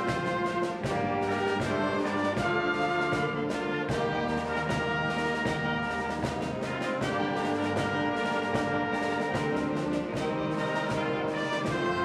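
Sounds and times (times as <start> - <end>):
wind band playing: 0.0 - 12.0.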